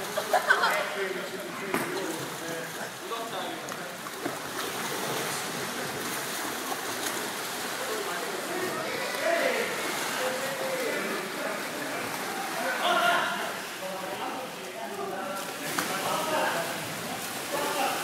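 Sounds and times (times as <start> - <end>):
water noise in pool: 0.0 - 18.0
echoing indistinct voices: 7.6 - 18.0.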